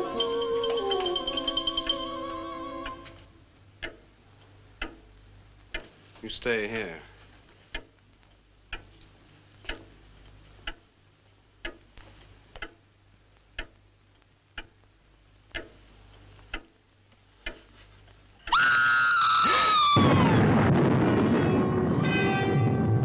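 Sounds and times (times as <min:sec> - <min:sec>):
clock ticking: 0:00.0 - 0:07.0, 0:07.6 - 0:18.6
high shrill scream: 0:18.5 - 0:23.0.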